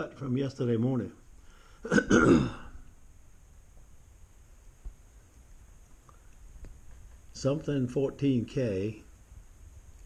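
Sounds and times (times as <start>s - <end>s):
man coughing: 1.8s - 2.8s.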